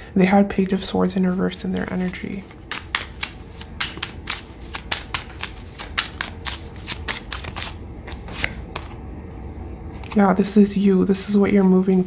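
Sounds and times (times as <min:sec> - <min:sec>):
cards being shuffled: 0:01.8 - 0:09.0.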